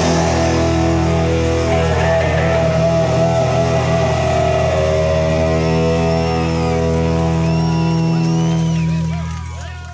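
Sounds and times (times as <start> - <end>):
rock band sustained guitar chord: 0.0 - 9.2.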